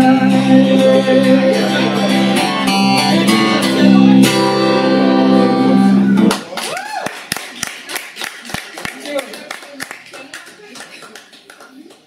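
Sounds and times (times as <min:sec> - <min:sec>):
people talking: 0:00.0 - 0:06.4
audience clapping: 0:06.2 - 0:12.0.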